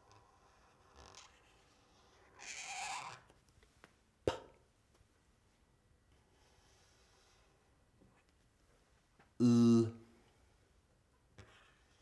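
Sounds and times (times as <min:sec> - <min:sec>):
marker pen drawing on paper: 0:00.0 - 0:03.4, 0:06.1 - 0:07.6, 0:11.4 - 0:12.0.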